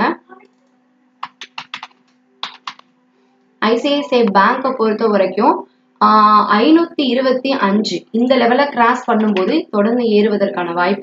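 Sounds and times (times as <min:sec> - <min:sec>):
computer keyboard typing: 0:01.2 - 0:02.9.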